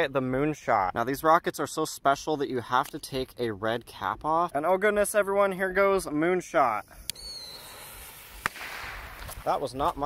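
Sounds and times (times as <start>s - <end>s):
firework whistle: 6.9s - 9.3s
fuse hissing: 7.0s - 9.2s
torch lighter hissing: 7.1s - 9.3s
firework crack: 7.2s - 10.0s.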